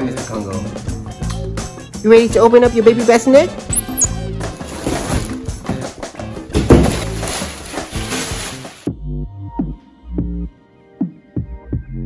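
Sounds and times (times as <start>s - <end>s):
background music with beat: 3.6s - 4.6s, 8.0s - 12.0s
plastic packaging crinkling: 6.8s - 8.9s.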